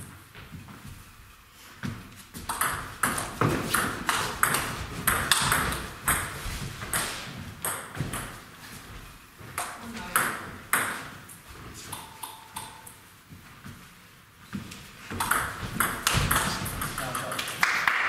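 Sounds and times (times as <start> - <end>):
table tennis ball clicking: 11.9 - 12.9.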